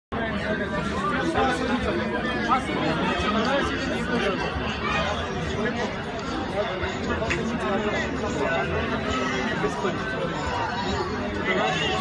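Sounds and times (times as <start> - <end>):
indistinct chatter of voices: 0.1 - 12.0.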